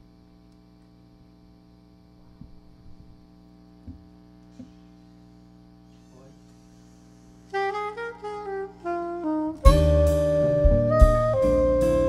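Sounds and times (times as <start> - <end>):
amplifier hum: 0.0 - 12.0
jazz band playing: 7.5 - 12.0
soprano saxophone phrase: 7.5 - 12.0.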